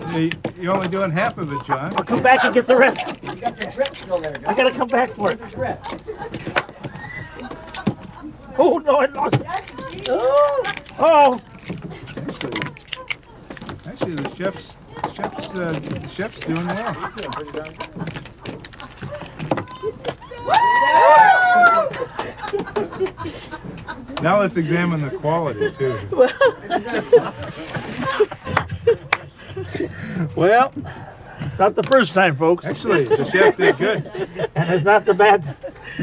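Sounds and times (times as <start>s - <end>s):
people laughing and chattering: 0.0s - 36.0s
knife scraping oyster shells: 2.8s - 6.1s, 9.5s - 19.8s.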